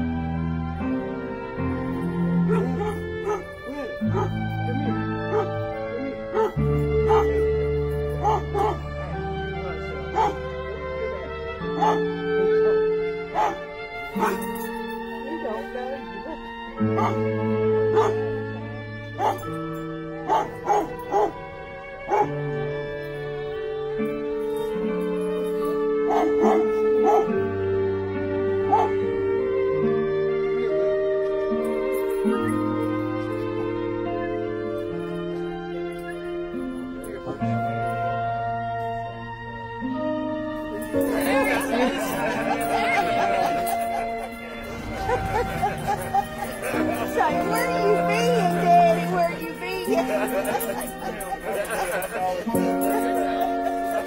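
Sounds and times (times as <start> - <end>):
slow background music: 0.0 - 54.0
dog crying high: 2.5 - 5.6, 6.3 - 7.4, 8.2 - 8.8, 10.1 - 10.5, 11.8 - 13.6, 14.2 - 14.5, 17.0 - 17.2, 17.9 - 18.2, 19.2 - 19.4, 20.3 - 21.4, 22.1 - 22.4, 26.1 - 27.3, 28.7 - 29.0.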